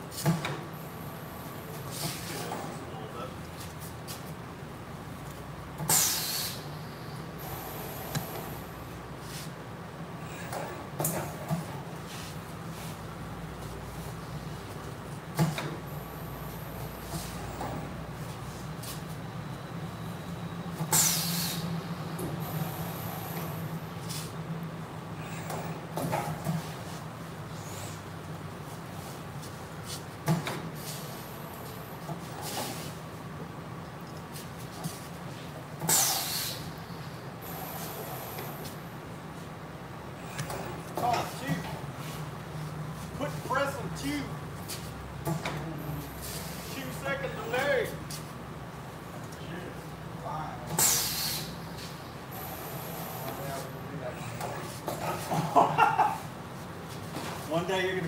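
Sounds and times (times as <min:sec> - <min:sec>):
machinery humming: 0:04.6 - 0:33.8, 0:34.5 - 0:48.1, 0:49.8 - 0:55.2
loud hissing bursts: 0:05.9 - 0:06.7, 0:20.9 - 0:21.8, 0:35.8 - 0:36.8, 0:50.7 - 0:53.5.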